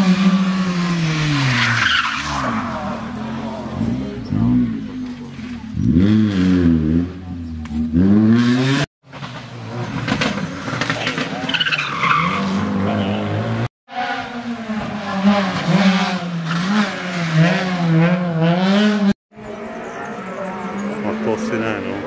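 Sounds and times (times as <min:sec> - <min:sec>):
rally car engines revving: 0:00.0 - 0:22.0.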